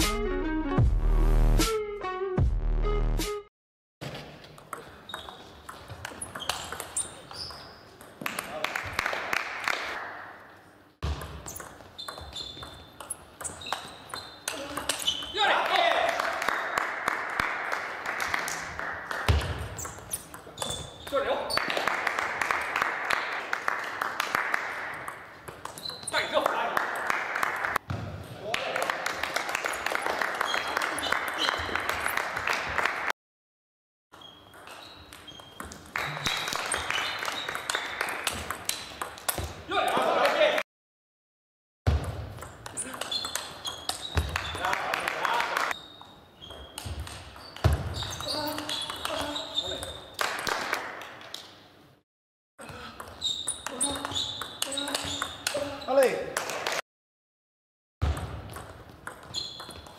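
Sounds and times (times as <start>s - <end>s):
table tennis ball pinging: 4.4s - 8.4s, 11.0s - 15.4s, 19.2s - 21.8s, 34.2s - 39.5s, 41.9s - 44.7s, 46.5s - 50.0s, 52.6s - 55.6s, 58.0s - 59.9s.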